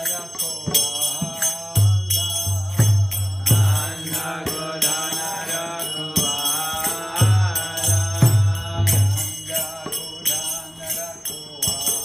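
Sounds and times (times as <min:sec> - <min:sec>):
hand cymbals: 0:00.0 - 0:12.0
mantra chanting: 0:00.0 - 0:12.0.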